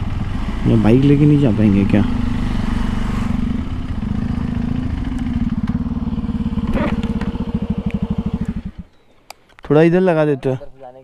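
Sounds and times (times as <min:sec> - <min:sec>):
motorcycle engine idling: 0:00.0 - 0:09.1.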